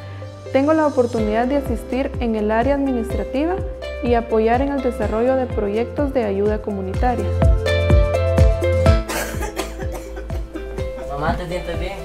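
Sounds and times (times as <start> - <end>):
background music with steady beat: 0.0 - 12.0
woman coughing: 9.0 - 10.6.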